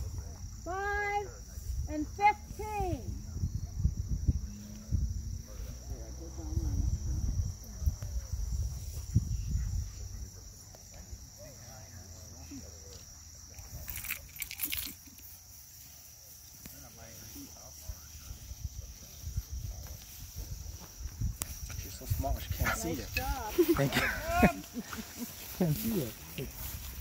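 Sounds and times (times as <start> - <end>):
wind rumble on microphone: 0.0 - 10.5, 17.8 - 24.5
insects droning: 0.0 - 27.0.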